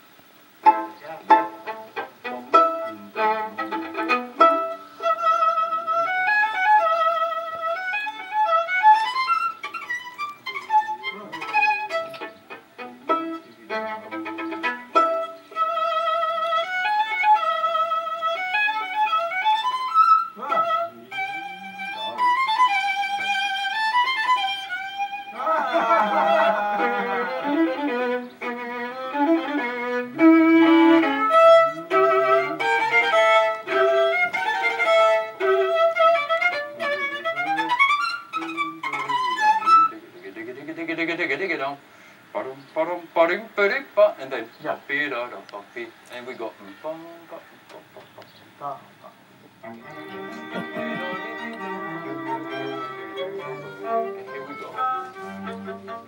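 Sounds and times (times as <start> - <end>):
fiddle music: 0.0 - 47.8, 49.5 - 56.0.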